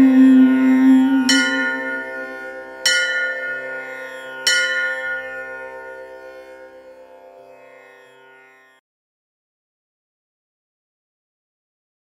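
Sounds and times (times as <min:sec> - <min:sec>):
bell ringing: 0:00.8 - 0:06.0.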